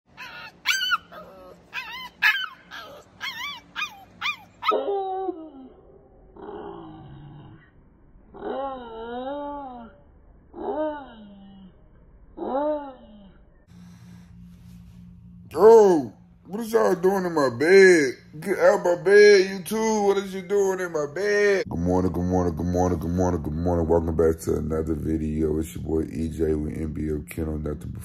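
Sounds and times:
puppy yipping: 0.1s - 4.9s
puppy howling: 0.1s - 7.0s, 8.3s - 11.7s, 12.4s - 13.4s.

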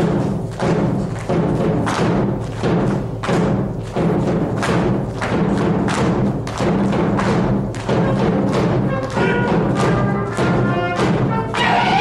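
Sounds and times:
dancers stamping on stage floor: 0.0s - 12.0s
folk dance music: 0.0s - 12.0s.

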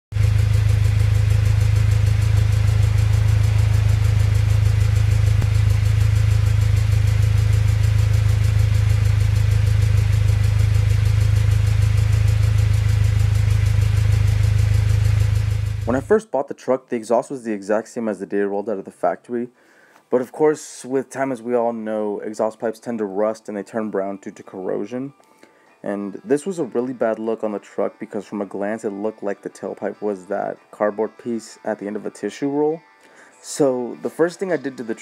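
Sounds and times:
pickup exhaust idling: 0.1s - 16.1s.

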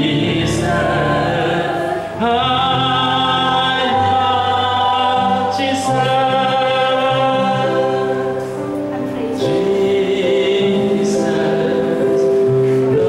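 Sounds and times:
man singing: 0.0s - 8.5s, 9.3s - 13.0s
electronic keyboard chords: 0.0s - 13.0s.

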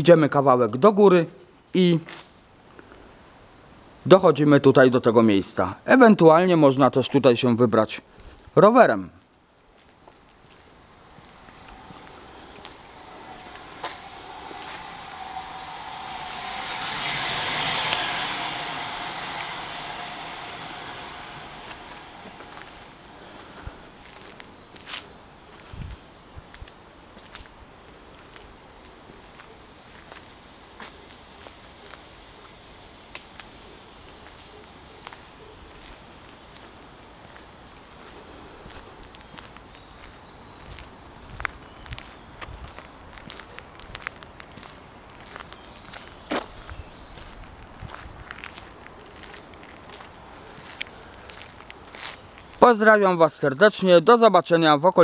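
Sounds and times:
footsteps on gravel: 9.7s - 12.7s, 22.5s - 25.8s
vehicle driving past: 10.4s - 25.1s.

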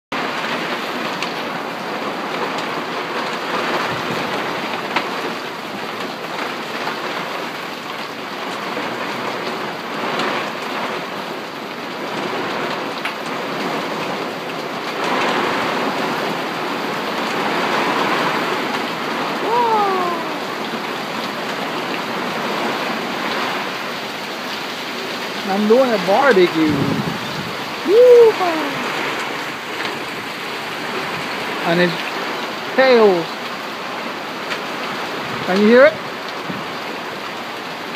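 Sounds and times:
heavy rain hiss: 0.2s - 37.9s.

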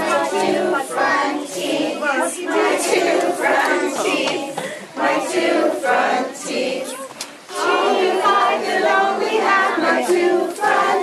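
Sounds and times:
children singing: 0.0s - 11.0s.

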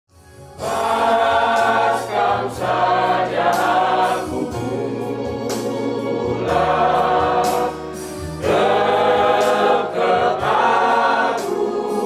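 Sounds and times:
bass accompaniment: 0.1s - 12.0s
vocal group singing a hymn: 0.5s - 12.0s.

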